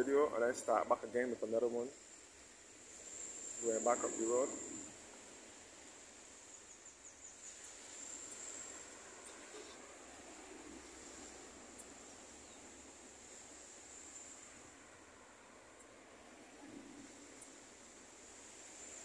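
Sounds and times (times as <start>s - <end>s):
faint road traffic: 0.0s - 19.0s
high-pitched insect drone: 2.9s - 5.0s, 6.3s - 9.9s.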